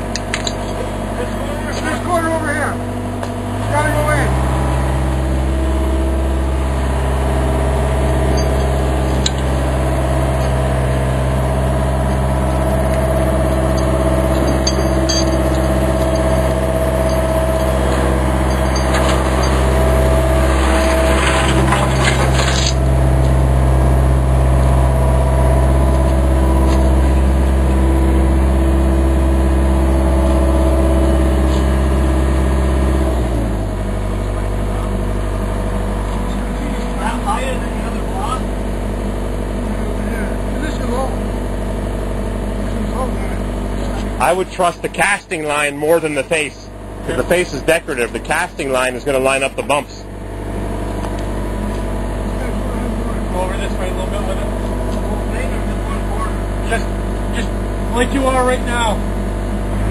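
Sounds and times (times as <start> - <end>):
diesel engine running: 0.0 - 59.9
steel bucket scraping concrete: 15.4 - 22.8.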